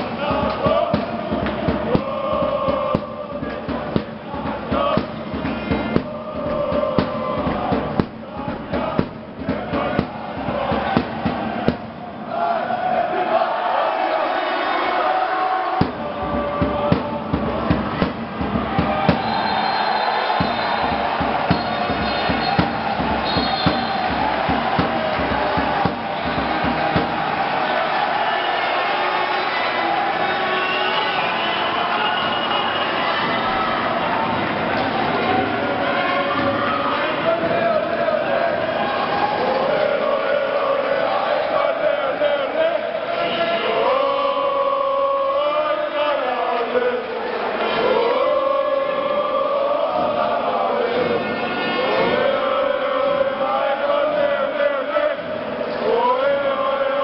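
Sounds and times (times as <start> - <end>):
drumbeats: 0.0 - 13.0, 15.7 - 40.4, 49.1 - 52.5
crowd singing a chant: 0.0 - 57.0.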